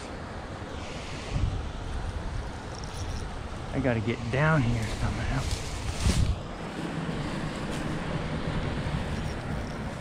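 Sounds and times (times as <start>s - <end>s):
wind buffeting microphone: 1.0s - 10.0s.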